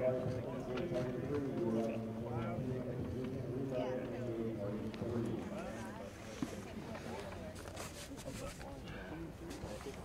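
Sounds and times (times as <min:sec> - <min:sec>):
men talking indistinctly: 0:00.0 - 0:06.6.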